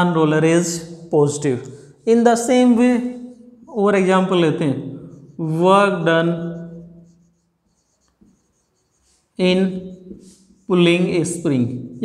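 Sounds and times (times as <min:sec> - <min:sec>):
man speaking: 0:00.0 - 0:06.7, 0:09.4 - 0:09.9, 0:10.7 - 0:12.0
marker pen writing on whiteboard: 0:02.1 - 0:12.0.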